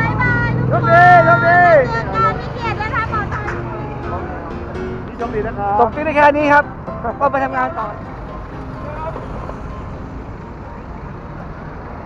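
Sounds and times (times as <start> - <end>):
car passing close by: 0.0 - 5.4, 7.3 - 12.0
road traffic noise: 0.0 - 12.0.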